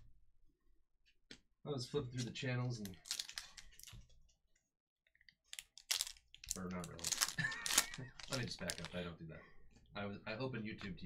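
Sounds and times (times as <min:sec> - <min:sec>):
foil wrapper crinkling: 0:02.9 - 0:04.0, 0:05.5 - 0:09.0.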